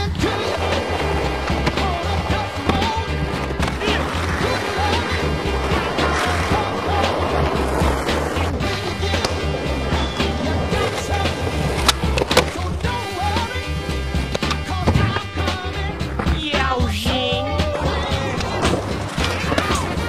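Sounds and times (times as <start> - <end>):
music with bass beat: 0.0 - 20.0
skateboard wheels rolling: 0.0 - 20.0
skateboard cracks: 0.1 - 13.6, 14.3 - 15.6, 18.3 - 20.0.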